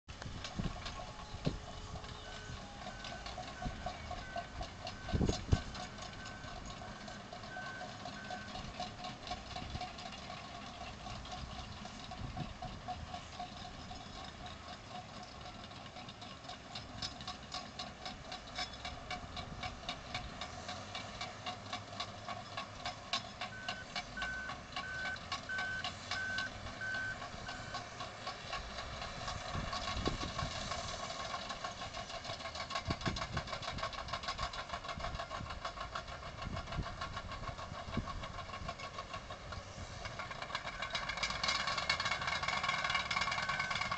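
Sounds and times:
distant heavy machines running: 0:00.1 - 0:43.9
reversing alarm beeping: 0:00.8 - 0:08.7, 0:23.4 - 0:27.8, 0:43.2 - 0:43.9.

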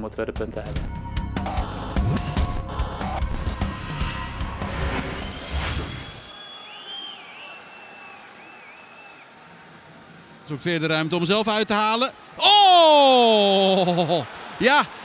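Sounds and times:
rising and falling whistles: 0:03.4 - 0:09.3
faint stadium crowd: 0:06.1 - 0:15.0.

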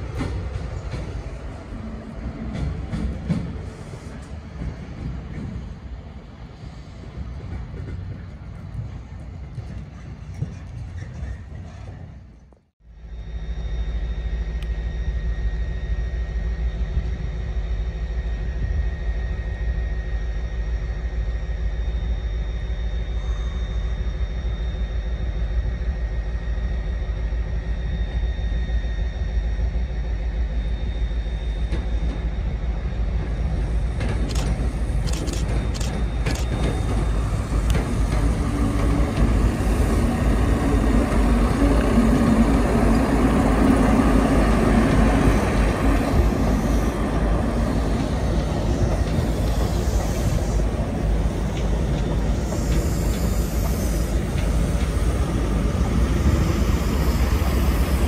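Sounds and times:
constant high whine: 0:00.0 - 0:58.0
diesel train rumbling past: 0:00.0 - 0:58.0.

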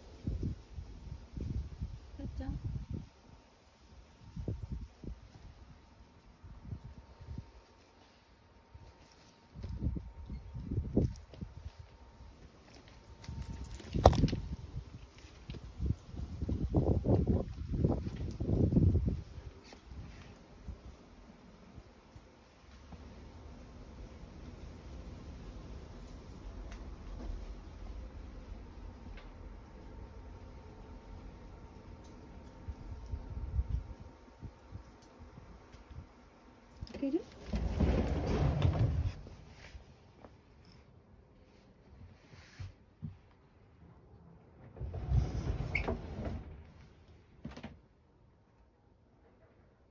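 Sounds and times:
wind buffeting microphone: 0:00.1 - 0:03.2, 0:04.2 - 0:07.6, 0:09.5 - 0:12.1, 0:13.3 - 0:20.9, 0:32.6 - 0:36.2.

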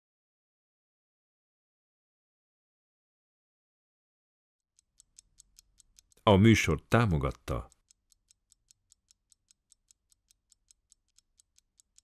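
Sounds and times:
mechanical watch ticking: 0:04.6 - 0:12.0.

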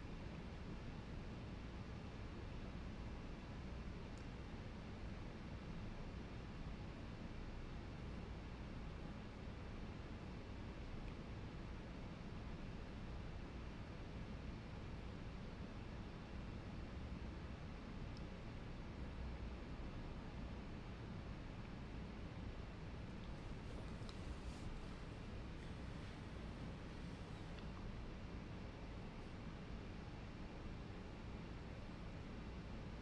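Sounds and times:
microphone hiss: 0:00.0 - 0:33.0.

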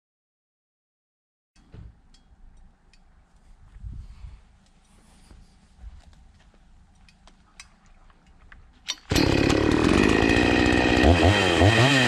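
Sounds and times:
chainsaw starting and running: 0:08.9 - 0:12.0.

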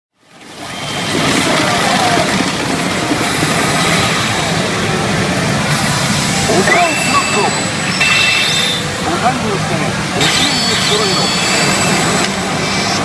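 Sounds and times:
pachinko machine rushing sound effect: 0:00.7 - 0:13.0.

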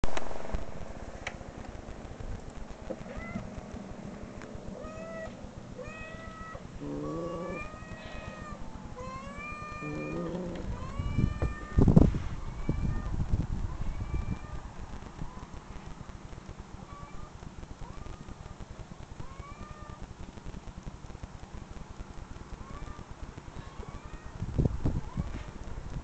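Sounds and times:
cat meowing: 0:04.8 - 0:11.8.

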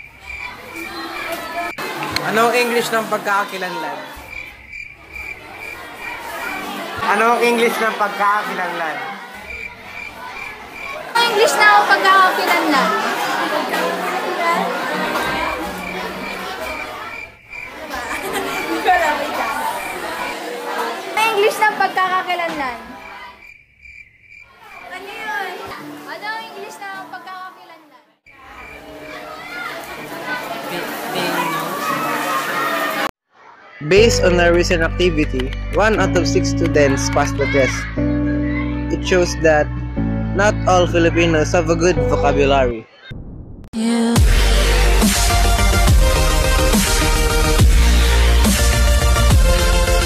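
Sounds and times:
students chattering: 0:00.0 - 0:23.6, 0:24.5 - 0:43.1.

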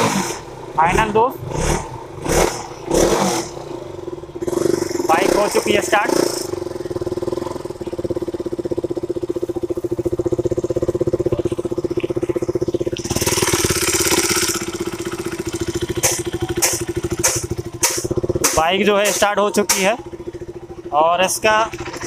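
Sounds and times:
motorcycle engine idling: 0:00.0 - 0:22.0
sharp ticks: 0:11.4 - 0:20.3.

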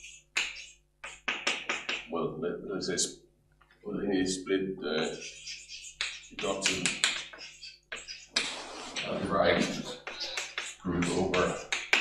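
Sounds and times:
chalk tapping on blackboard: 0:00.0 - 0:02.1, 0:05.1 - 0:12.0.

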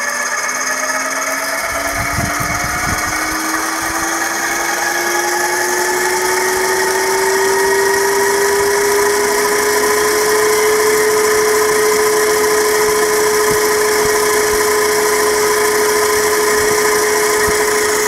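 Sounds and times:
electric motor whining: 0:00.0 - 0:18.0.

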